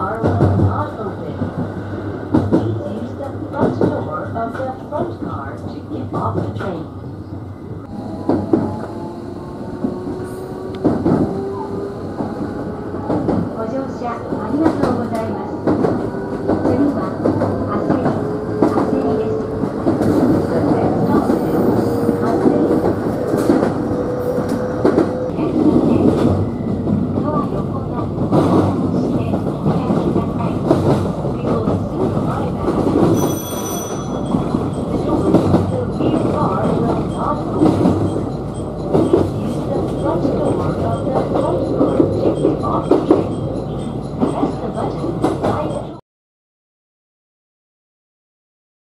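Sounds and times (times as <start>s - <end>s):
train wheels rumbling on rail: 0.0s - 46.0s.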